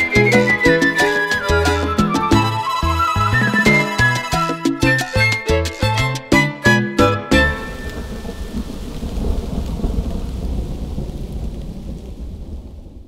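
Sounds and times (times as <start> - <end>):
rain: 7.3 - 13.0
low rumble of thunder: 7.6 - 13.0.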